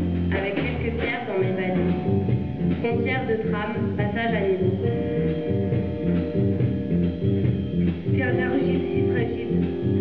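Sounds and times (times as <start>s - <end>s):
electric guitar: 0.0s - 10.0s
live band playing: 0.0s - 10.0s.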